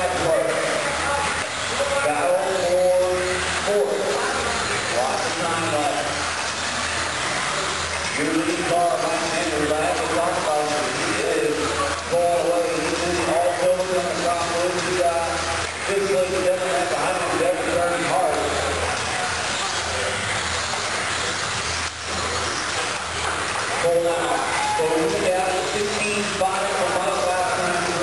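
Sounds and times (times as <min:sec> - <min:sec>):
indistinct talking: 0:00.0 - 0:28.0
rc car motors whining: 0:00.0 - 0:28.0.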